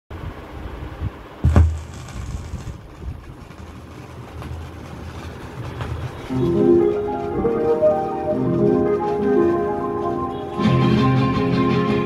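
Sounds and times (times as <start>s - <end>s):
needle landing thump: 1.4s - 2.8s
record rumble and clicks: 1.4s - 10.6s.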